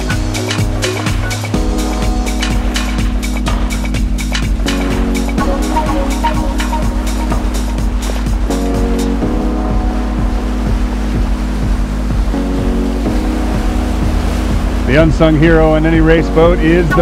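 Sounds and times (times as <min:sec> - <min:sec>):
background music with steady beat: 0:00.0 - 0:17.0.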